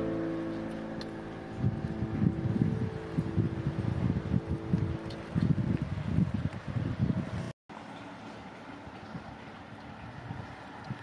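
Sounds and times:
held musical chord: 0.0 - 5.4
wind buffeting microphone: 0.0 - 7.5, 8.8 - 11.0.

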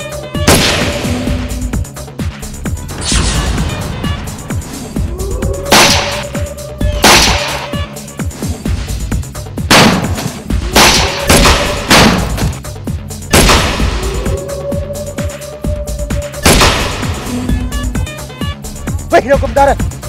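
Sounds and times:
background music: 0.0 - 20.0
echoing gunshots: 0.4 - 1.6, 5.7 - 6.4, 7.0 - 7.9, 9.6 - 12.7, 13.3 - 14.2, 16.4 - 17.3
rising whine: 4.7 - 7.1.

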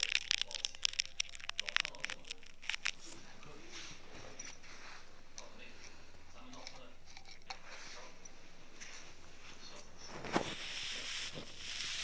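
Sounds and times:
ear tool crackling and scratching: 0.0 - 6.0, 6.6 - 12.0.

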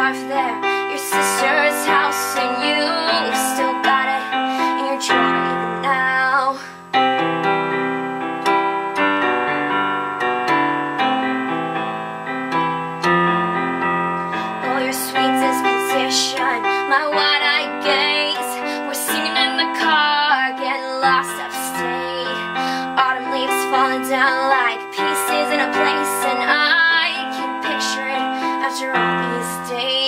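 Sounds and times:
keyboard playing sustained piano chords: 0.0 - 30.0.

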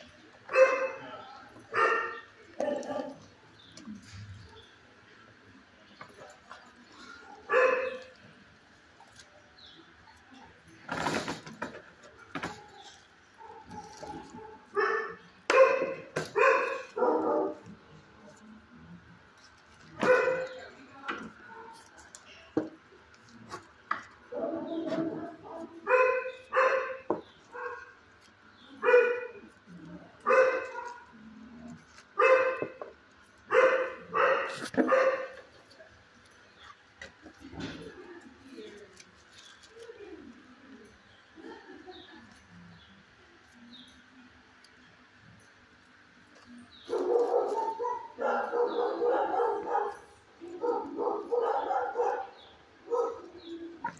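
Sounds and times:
dog barking: 0.5 - 1.1, 1.7 - 3.2, 7.3 - 8.1, 13.4 - 17.7, 20.0 - 20.6, 24.3 - 28.0, 28.8 - 29.5, 30.2 - 31.1, 32.2 - 32.8, 33.5 - 35.4, 46.9 - 53.9.

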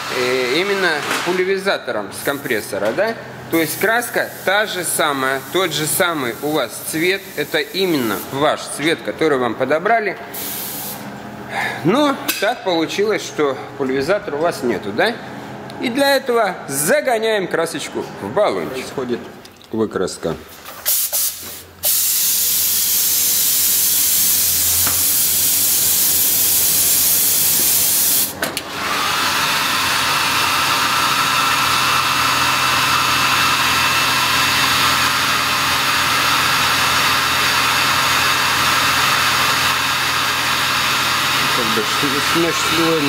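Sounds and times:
paint spray gun hissing: 3.6 - 8.4, 10.4 - 11.0, 20.9 - 28.3
hair dryer motor whine: 28.6 - 43.0.

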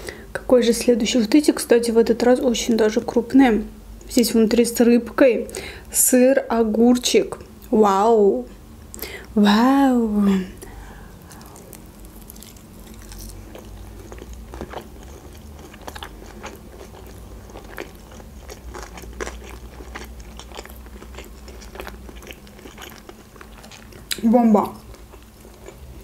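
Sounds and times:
wet chewing mouth sounds: 10.6 - 26.0.

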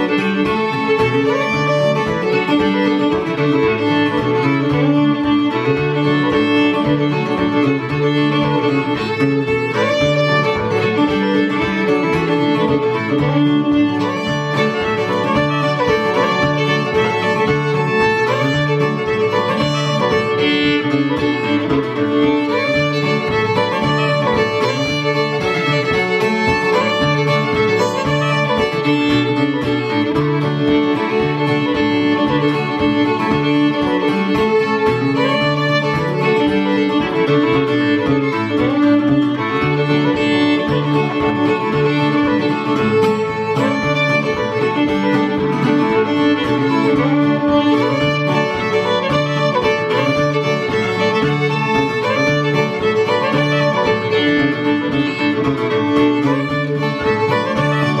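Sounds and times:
acoustic guitar rhythm: 0.0 - 58.0
bowed fiddle melody: 0.0 - 58.0.

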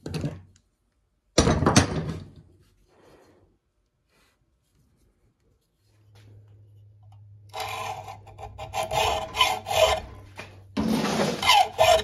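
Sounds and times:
hand file rasping on wood: 7.6 - 10.3, 10.9 - 12.0.

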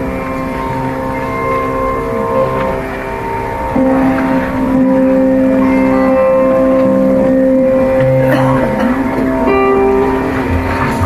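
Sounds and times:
electric mandolins playing: 0.0 - 11.0
steady drone: 0.0 - 11.0.

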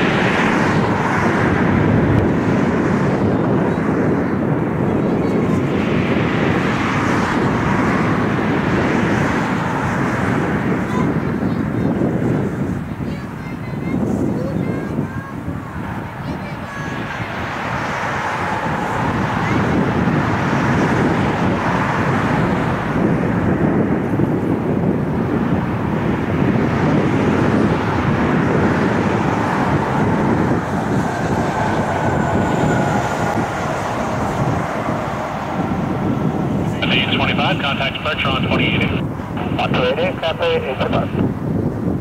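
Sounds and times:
jet engines roaring: 0.0 - 42.0.

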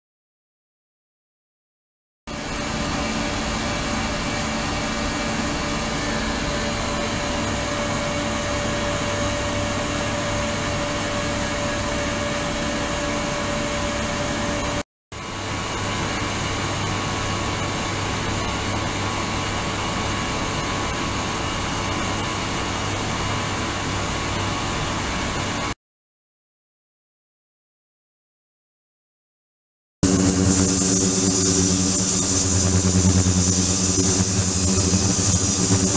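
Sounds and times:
faint steady whine: 30.0 - 35.9
ultrasonic tank hissing and humming: 30.0 - 35.9.

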